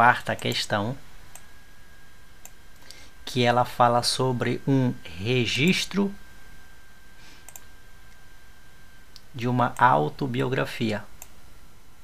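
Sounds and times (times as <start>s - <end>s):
steady low hiss: 0.0s - 12.0s
computer mouse click: 7.4s - 7.7s.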